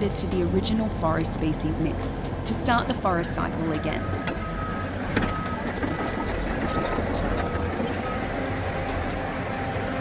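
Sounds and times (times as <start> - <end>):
diesel engine running: 0.0 - 10.0.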